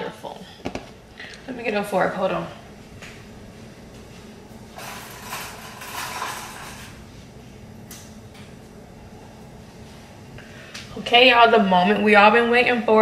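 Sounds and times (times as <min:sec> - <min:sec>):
low steady room hum: 0:00.0 - 0:13.0.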